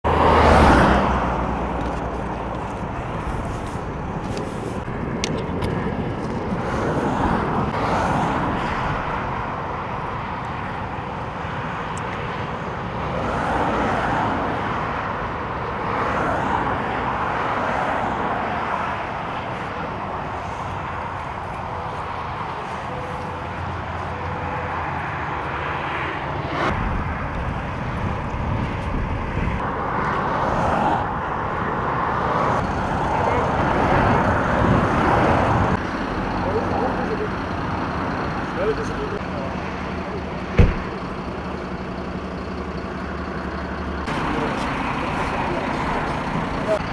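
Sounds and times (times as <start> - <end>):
motorway traffic passing: 0.0 - 46.9
steady traffic rumble: 0.0 - 46.9.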